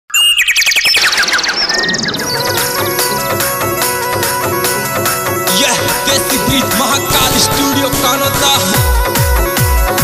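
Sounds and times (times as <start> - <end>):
bird trill falling in pitch: 0.1 - 3.4.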